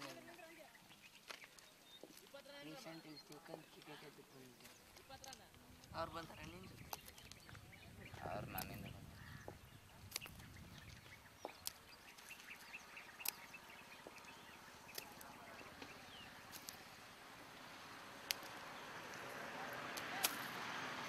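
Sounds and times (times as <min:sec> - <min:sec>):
distant bird chirps: 0:00.0 - 0:21.0
sharp clicks: 0:18.3 - 0:19.3.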